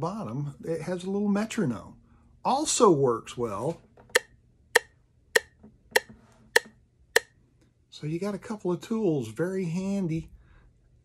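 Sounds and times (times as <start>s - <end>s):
metronome clicking: 4.2s - 7.3s.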